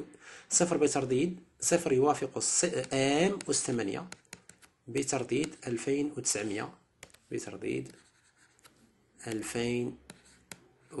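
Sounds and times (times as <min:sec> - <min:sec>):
man speaking: 0:00.0 - 0:04.2, 0:04.8 - 0:08.1, 0:09.2 - 0:10.1
stylus tapping on tablet screen: 0:02.4 - 0:05.9, 0:06.8 - 0:10.7.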